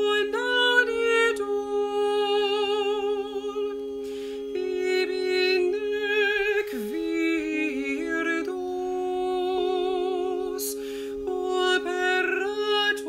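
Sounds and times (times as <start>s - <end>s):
short breath: 4.0s - 4.5s, 10.8s - 11.2s
layered unaccompanied singing: 4.5s - 13.0s.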